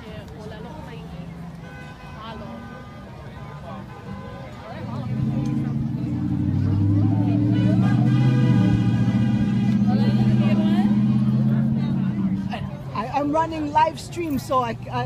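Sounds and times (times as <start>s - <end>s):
crowd voices: 0.0s - 15.0s
heavy vehicle engine drone: 4.6s - 13.2s.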